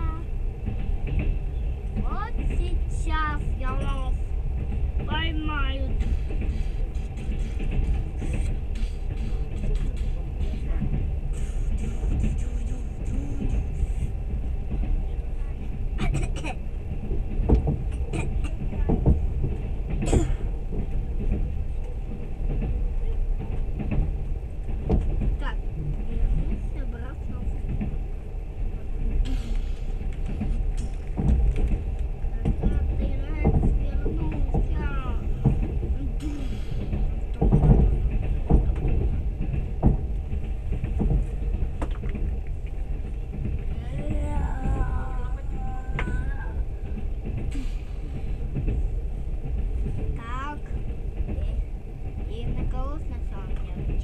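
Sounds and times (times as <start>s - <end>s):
train rumbling: 0.0s - 54.0s.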